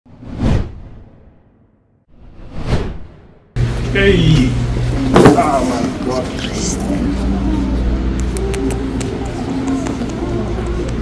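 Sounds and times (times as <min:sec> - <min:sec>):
cinematic whoosh: 0:00.1 - 0:03.6.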